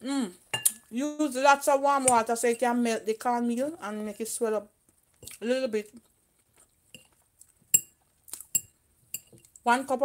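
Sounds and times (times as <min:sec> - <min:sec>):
fork clinking on a plate: 0:07.7 - 0:09.4.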